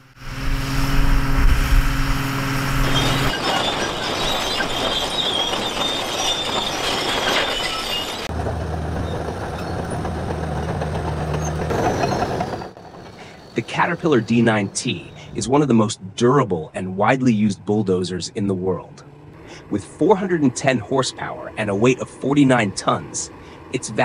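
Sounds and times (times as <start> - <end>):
bulldozer engine hum: 0.0 - 24.0
machine and ground noise: 0.0 - 24.0
faint high whine: 13.1 - 15.7.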